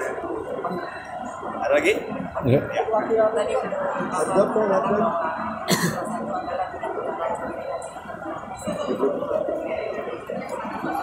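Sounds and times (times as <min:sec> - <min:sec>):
murmur of voices: 0:00.0 - 0:11.0
person coughing: 0:05.7 - 0:06.0.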